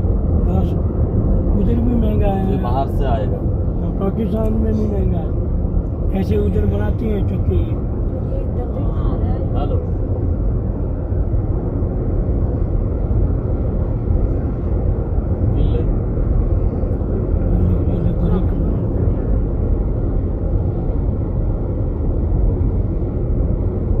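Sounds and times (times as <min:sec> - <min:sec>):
road and engine rumble: 0:00.0 - 0:24.0.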